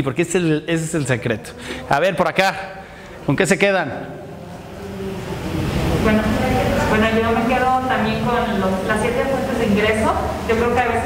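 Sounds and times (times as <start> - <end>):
low rumbling noise: 2.8 - 11.0
faint voices: 4.0 - 10.4.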